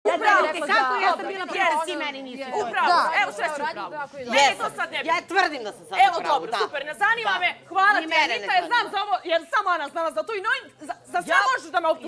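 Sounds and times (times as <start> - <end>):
people arguing: 0.0 - 12.0.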